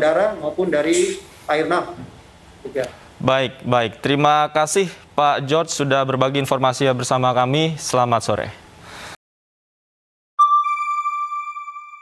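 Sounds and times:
bell-like electronic chime: 10.4s - 12.0s.

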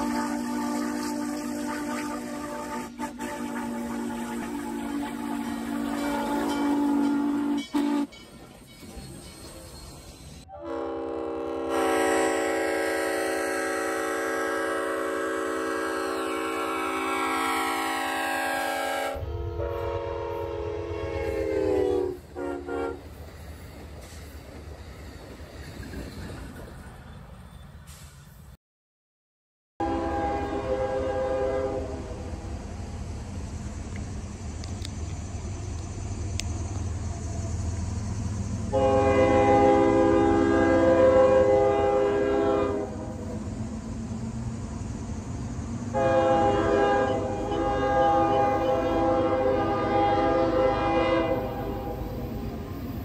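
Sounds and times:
locomotive horn blasts: 0.0s - 8.2s, 10.5s - 23.1s, 29.8s - 32.4s, 38.7s - 43.5s, 45.9s - 52.5s
train whistle chord: 0.0s - 8.2s, 10.5s - 23.0s, 29.8s - 32.4s, 38.7s - 43.5s, 45.9s - 52.5s
train rumbling by: 0.0s - 28.6s, 29.8s - 53.0s.

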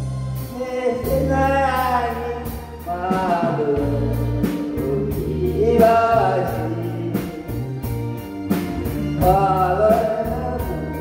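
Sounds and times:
bass notes: 0.0s - 11.0s
live band playing: 0.0s - 11.0s
man singing into a microphone: 0.4s - 7.7s, 9.0s - 11.0s.

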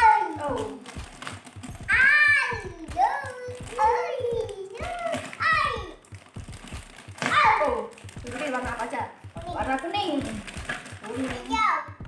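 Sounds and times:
plastic bag crinkling: 0.0s - 1.9s, 2.6s - 11.6s
child chattering: 1.8s - 6.1s.

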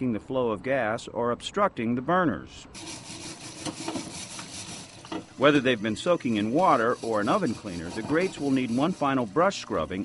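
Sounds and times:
brush scrubbing a grill grate: 2.8s - 10.0s.

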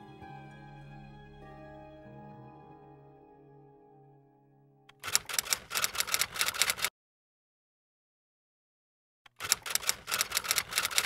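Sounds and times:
typewriter key strikes: 4.9s - 6.9s, 9.3s - 11.0s.

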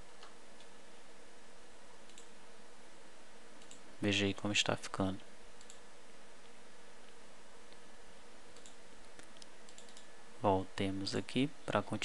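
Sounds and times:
steady background hiss: 0.0s - 12.0s
faint computer mouse clicks: 2.1s - 2.3s, 3.6s - 3.8s, 5.6s - 5.8s, 8.6s - 10.1s.

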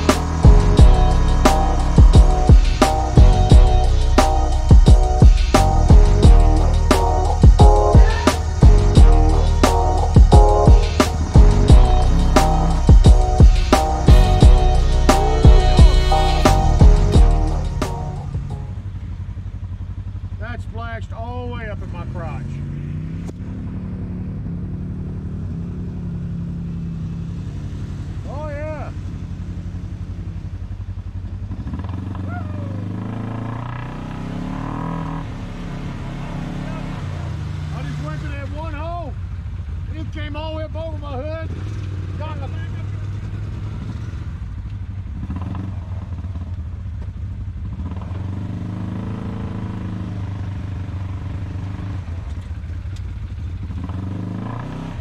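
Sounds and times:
voices calling out: 0.0s - 18.3s, 32.2s - 32.9s
utility vehicle engine running: 0.0s - 55.0s.

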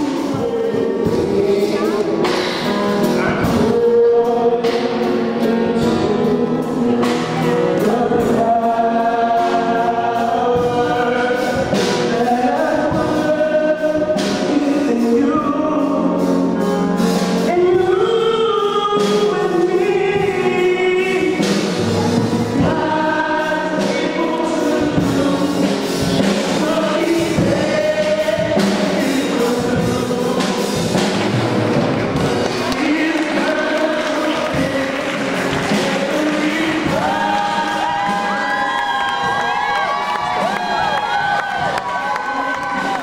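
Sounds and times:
choir singing gospel: 0.0s - 43.0s.

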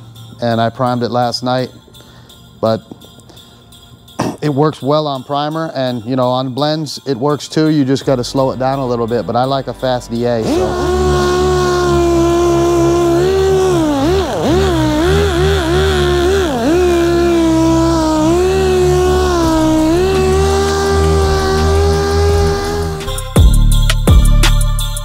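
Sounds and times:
air sander whining: 9.6s - 23.4s
music with drums: 23.0s - 25.0s.

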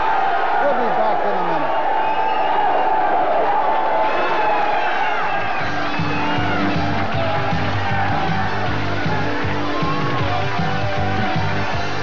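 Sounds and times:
audience cheering and shouting: 0.0s - 12.0s.

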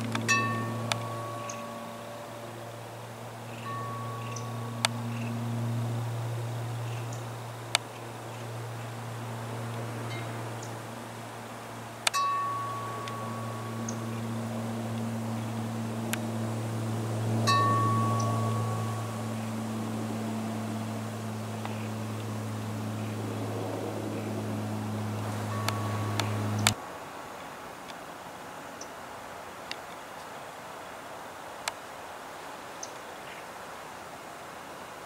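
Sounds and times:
wind chime ringing: 0.0s - 7.4s, 12.1s - 22.1s, 25.2s - 26.7s
turboprop aircraft drone: 0.0s - 26.8s
small clicks: 25.2s - 26.8s.

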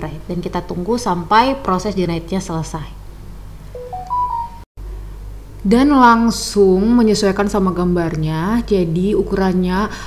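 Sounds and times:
rising electronic chime beeps: 3.8s - 4.7s.

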